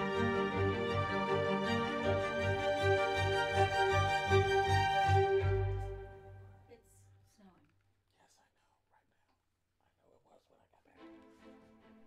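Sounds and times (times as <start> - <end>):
intro music: 0.0 - 6.7
faint whispery voice: 6.8 - 11.3.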